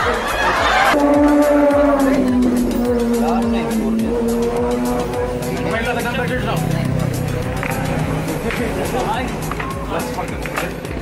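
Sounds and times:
airplane passing overhead: 1.0s - 11.0s.

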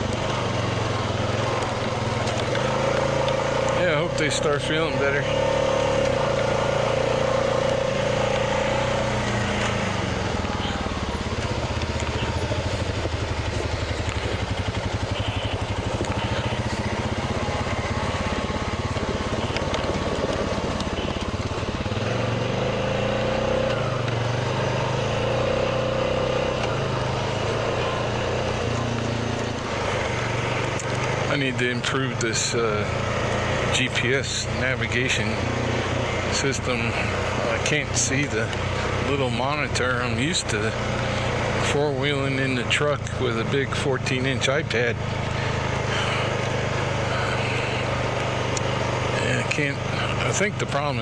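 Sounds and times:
atv engine running: 0.0s - 51.0s.

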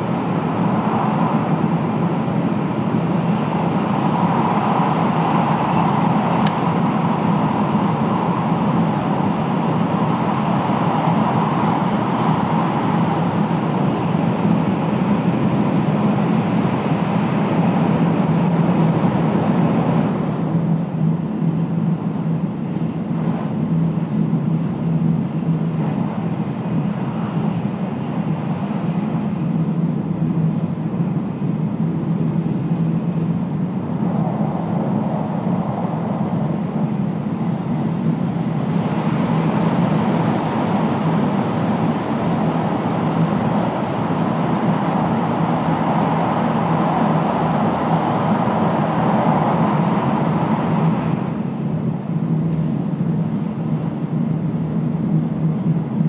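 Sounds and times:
train running noise inside carriage: 0.0s - 56.0s.

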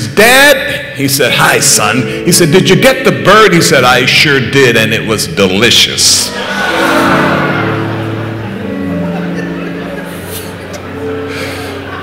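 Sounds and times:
congregation laughing: 6.2s - 12.0s
held keyboard chords: 6.3s - 12.0s.

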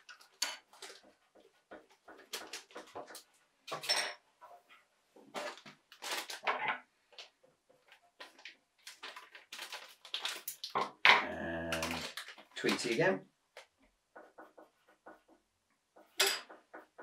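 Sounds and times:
foil bags crinkling: 5.4s - 6.6s, 8.2s - 11.0s, 11.6s - 13.1s
low pitched vocal sound: 11.2s - 12.1s
person speaking a word: 11.2s - 13.2s.

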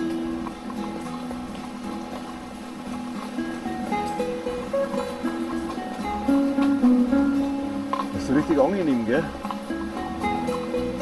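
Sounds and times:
stream rushing over stones: 0.0s - 11.0s.

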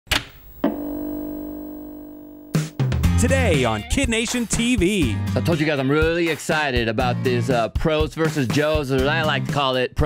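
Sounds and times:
ringing low chord: 0.6s - 3.8s.

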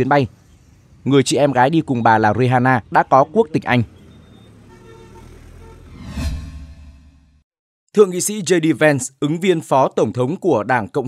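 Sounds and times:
street traffic noise: 0.0s - 7.2s
bus engine: 0.0s - 7.4s.

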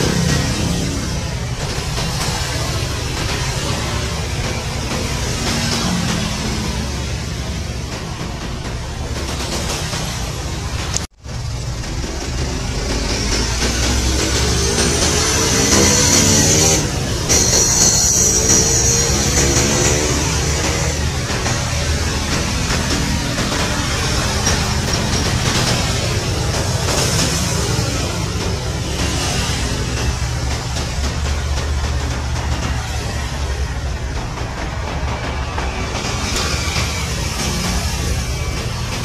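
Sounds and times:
helicopter turbine and rotor: 0.0s - 39.0s
music playing: 0.0s - 39.0s.

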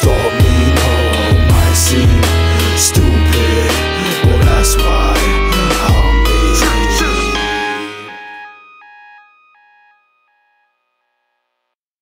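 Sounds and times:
hip hop beat and bass: 0.0s - 10.0s
melody of single notes: 3.1s - 10.9s.

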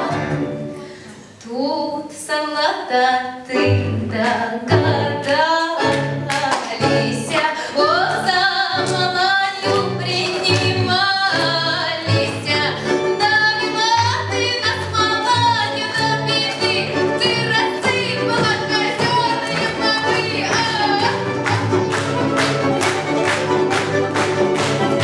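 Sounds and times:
folk ensemble playing: 0.0s - 1.4s, 3.4s - 25.0s
woman singing folk song: 1.4s - 22.0s.

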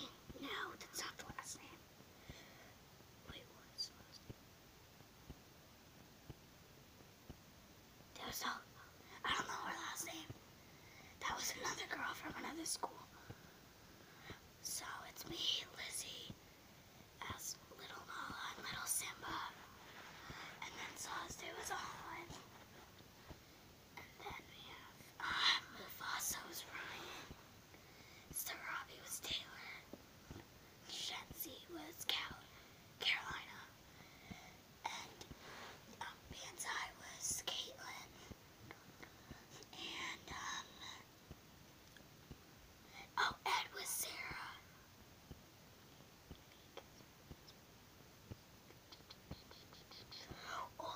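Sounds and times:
young boy whispering: 0.0s - 1.8s, 3.2s - 4.3s, 8.2s - 10.4s, 11.2s - 13.2s, 14.2s - 16.4s, 17.2s - 22.6s, 24.0s - 27.4s, 28.3s - 29.9s, 30.9s - 35.3s, 35.9s - 38.3s, 39.4s - 41.1s, 42.9s - 44.7s, 48.8s - 50.9s.

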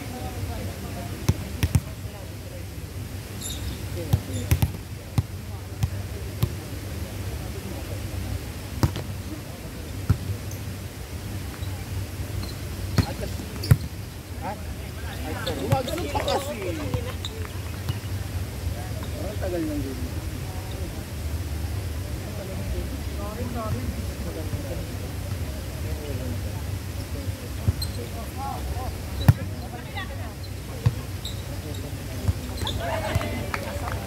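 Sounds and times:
players' voices: 0.0s - 34.0s.

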